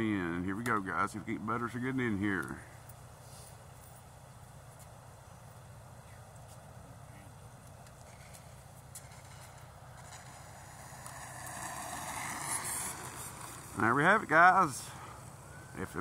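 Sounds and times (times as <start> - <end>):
electric ducted fan jet: 0.0 - 16.0
faint outdoor hiss: 0.0 - 16.0.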